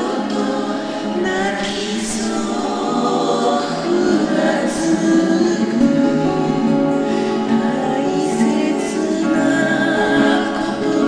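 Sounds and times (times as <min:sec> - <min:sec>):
acoustic guitar: 0:00.0 - 0:11.0
person singing a slow ballad: 0:00.0 - 0:11.0.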